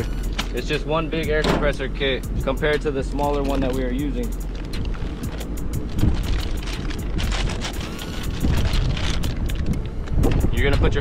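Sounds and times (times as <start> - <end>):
background music with steady beat: 0.0 - 11.0
wind rumble on microphone: 0.0 - 11.0
plastic bag crinkling: 3.4 - 9.9.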